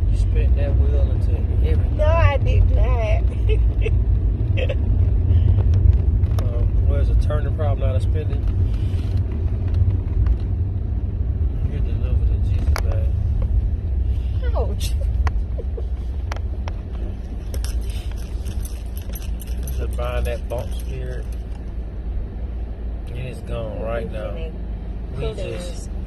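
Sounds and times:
car road and engine rumble: 0:00.0 - 0:26.0.

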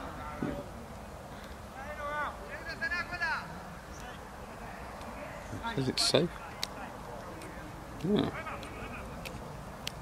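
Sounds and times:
low outdoor background: 0:00.0 - 0:10.0
distant voices shouting: 0:01.6 - 0:09.7.

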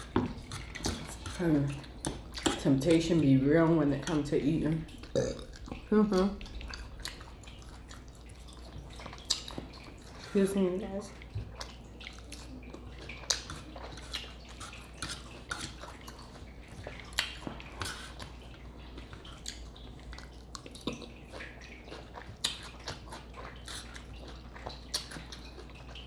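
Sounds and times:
low steady hum: 0:00.0 - 0:26.0
wet chewing and lip-smacking: 0:00.0 - 0:26.0.

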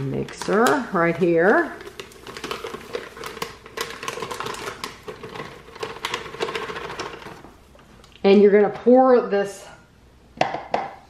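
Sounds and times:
dry mix pouring into glass bowl: 0:00.0 - 0:07.8
paper pouch crinkling: 0:00.0 - 0:07.8.

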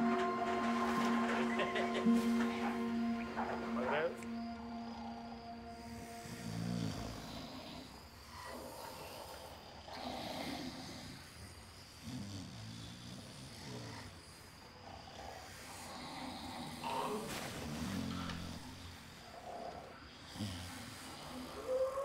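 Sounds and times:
people snoring: 0:00.0 - 0:22.0.

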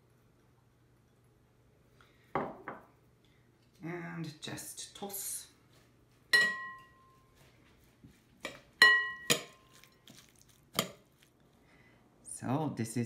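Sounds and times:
metal spoons clinking on glass bowl: 0:06.4 - 0:07.0, 0:08.8 - 0:09.9
glass ringing tone: 0:06.4 - 0:07.3, 0:08.8 - 0:09.4.

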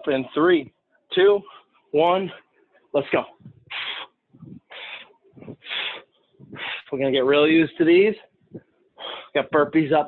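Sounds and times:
man breathing hard: 0:03.6 - 0:06.9, 0:09.0 - 0:09.4.

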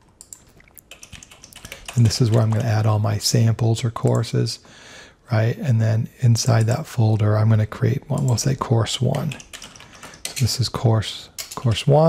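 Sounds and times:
typing on computer keyboard: 0:00.2 - 0:02.7, 0:08.1 - 0:10.6, 0:11.4 - 0:11.9.

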